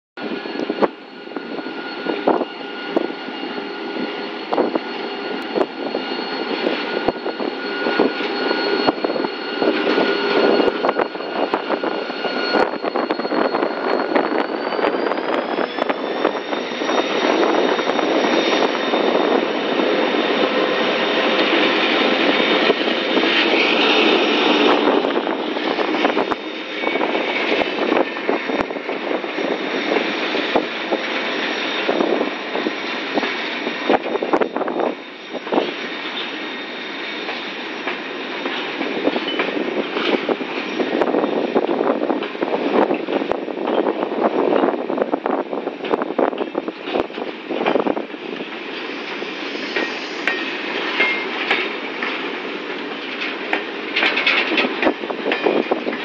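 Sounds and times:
diesel locomotive engine whine: 0.2s - 56.0s
wagon wheels clattering on rails: 49.8s - 56.0s.

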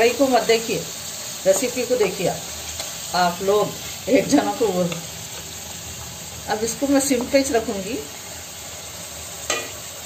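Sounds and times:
chicken sizzling in oil: 0.0s - 10.0s.

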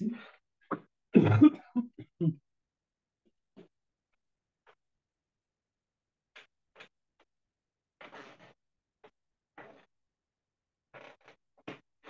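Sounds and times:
man chuckling: 1.2s - 2.4s.

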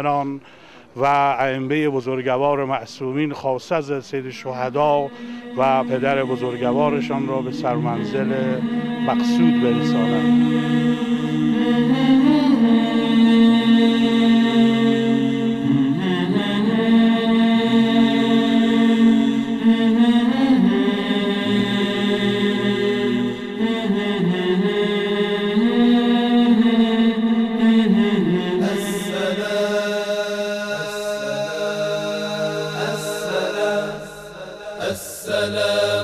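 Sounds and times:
voice chanting slow melody: 0.0s - 36.0s.

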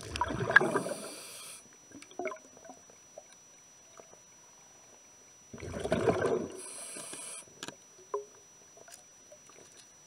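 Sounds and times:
underwater air bubbles gurgling: 0.0s - 2.9s, 5.5s - 7.4s
faint underwater clicks: 6.7s - 10.0s.

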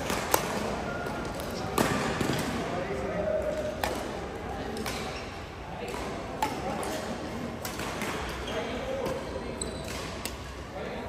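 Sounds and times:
rackets striking shuttlecock: 0.0s - 2.6s, 3.5s - 5.2s, 5.8s - 7.0s.

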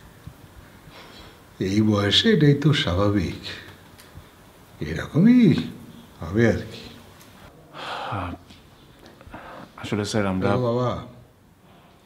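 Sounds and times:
man's breathy exhale: 7.6s - 8.4s.

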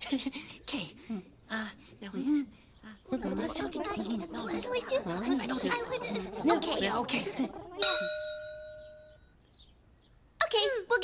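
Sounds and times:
metallic bell chime: 7.8s - 9.3s.

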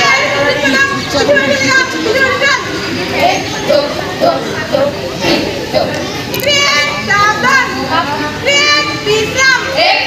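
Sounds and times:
children talking and calling: 0.0s - 10.0s.

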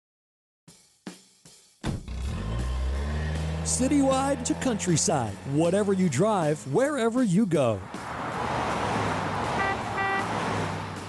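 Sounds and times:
traffic rushing: 2.2s - 11.0s
car horn toots: 9.5s - 10.5s.

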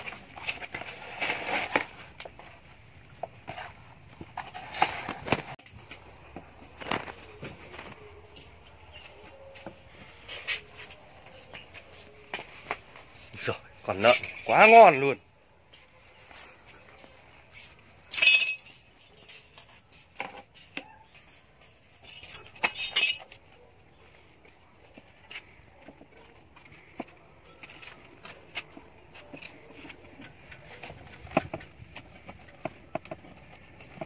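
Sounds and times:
metal clinks and rattles: 3.4s - 23.6s, 26.0s - 34.0s.

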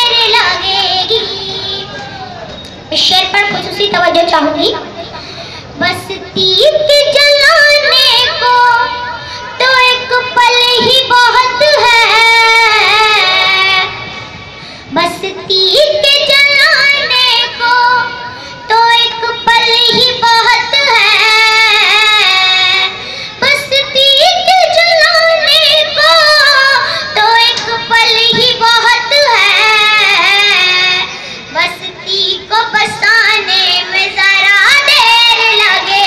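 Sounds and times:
girl singing through loudspeaker: 0.0s - 36.0s.

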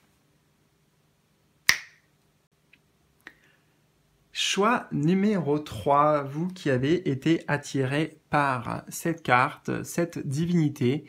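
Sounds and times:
sharp snap: 1.6s - 2.1s.

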